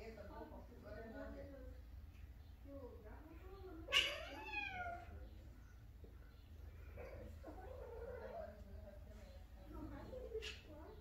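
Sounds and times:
cat yowling: 3.8s - 5.1s.

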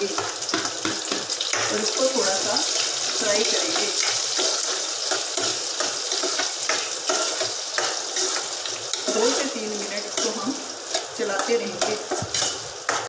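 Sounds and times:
onions sizzling in hot oil: 0.0s - 13.0s
spatula scraping a pan: 0.1s - 13.0s.

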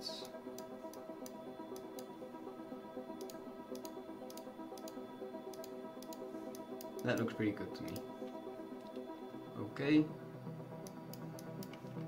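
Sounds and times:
soft sustained background music: 0.0s - 12.0s
computer mouse clicks: 3.2s - 8.1s, 10.8s - 12.0s.

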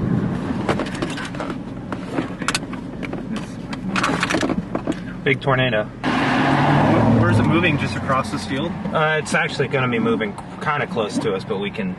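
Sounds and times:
vehicle rumble inside cabin: 0.0s - 11.9s.

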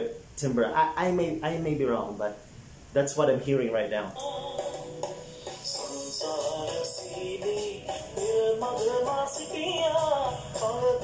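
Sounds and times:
live pop band with percussion: 4.6s - 11.0s.

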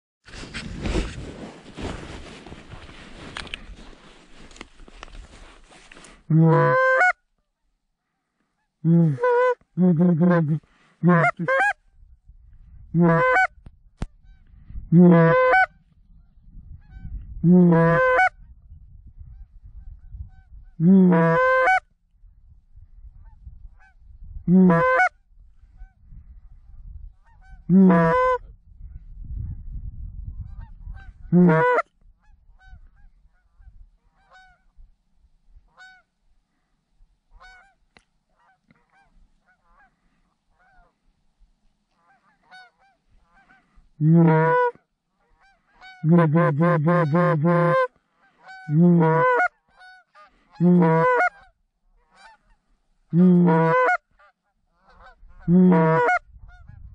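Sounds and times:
goose call honks and clucks: 6.3s - 7.2s, 8.6s - 11.9s, 12.9s - 15.8s, 16.8s - 18.4s, 20.3s - 21.9s, 23.3s - 25.2s, 27.2s - 28.5s, 30.4s - 34.7s, 35.7s - 36.1s, 37.3s - 41.0s, 41.9s - 56.9s
distant geese honking: 6.5s - 7.2s, 13.0s - 13.5s, 38.4s - 41.0s, 42.0s - 44.7s, 45.3s - 51.5s, 53.4s - 56.2s.

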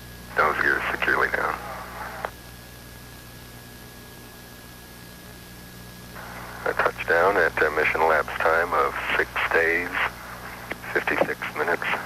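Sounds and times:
low mains hum: 0.0s - 12.0s.

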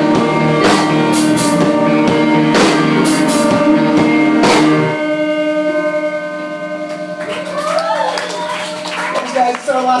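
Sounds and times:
rock chord ringing on: 0.0s - 10.0s.

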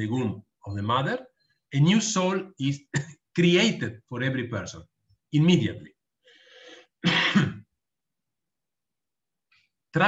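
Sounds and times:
man coughing: 7.0s - 7.7s.

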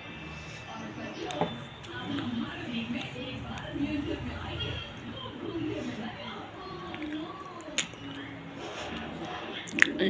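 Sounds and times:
faint background music: 0.0s - 10.0s
woman speaking: 0.8s - 8.4s.

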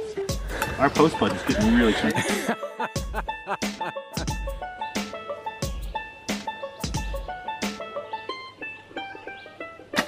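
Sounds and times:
plucked-string melody: 0.0s - 10.0s.

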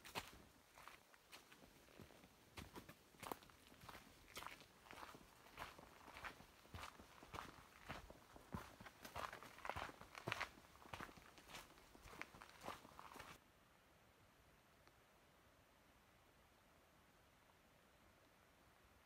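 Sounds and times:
footsteps on dirt and leaves: 0.0s - 13.4s.

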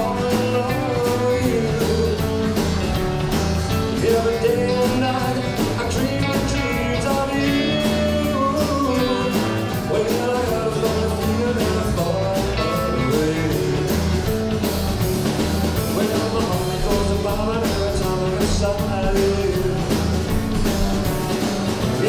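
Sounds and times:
male lead vocal: 0.0s - 14.5s, 15.8s - 22.0s
rock and roll band playing: 0.0s - 22.0s.

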